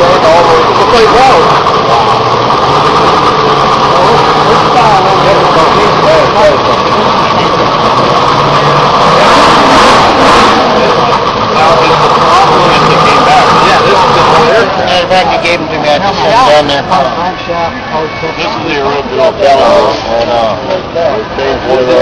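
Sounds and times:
people talking: 0.0 - 22.0
small motor running loudly: 0.0 - 22.0.

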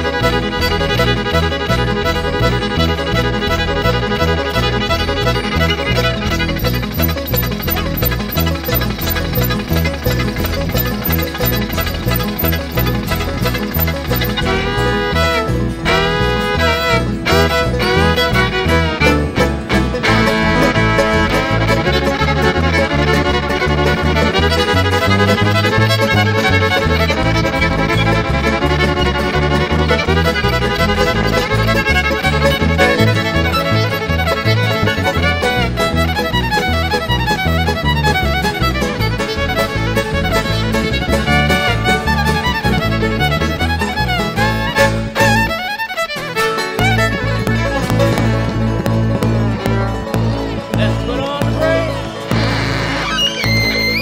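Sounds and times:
upright bass: 0.0 - 45.6, 46.6 - 54.0
acoustic guitar: 0.0 - 54.0
banjo: 0.0 - 54.0
bowed fiddle: 0.0 - 54.0.

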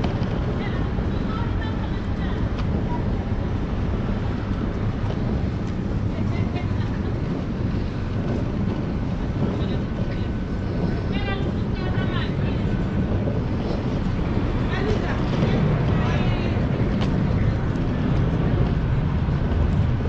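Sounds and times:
faint voices: 0.0 - 20.0
wind buffeting microphone: 0.0 - 20.0.

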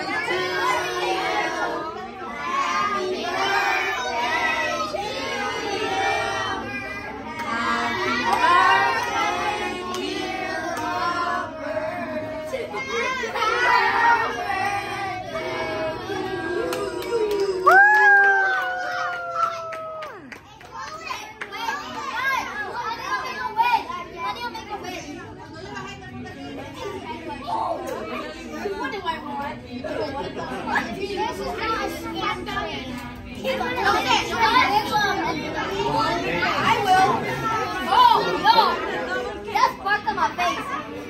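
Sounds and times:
children talking and calling out: 0.0 - 9.8, 11.2 - 41.0.

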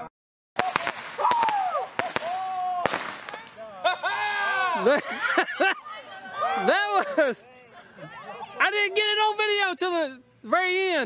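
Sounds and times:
fireworks cracking: 0.6 - 3.7.

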